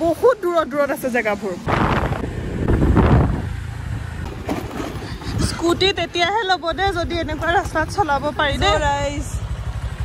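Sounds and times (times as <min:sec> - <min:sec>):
road noise: 0:00.0 - 0:10.0
wind buffeting microphone: 0:01.6 - 0:03.6.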